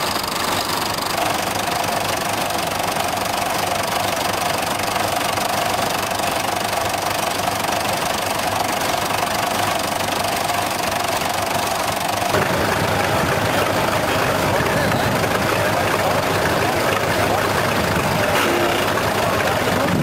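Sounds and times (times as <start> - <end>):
tractor diesel engines idling: 0.0 - 20.0.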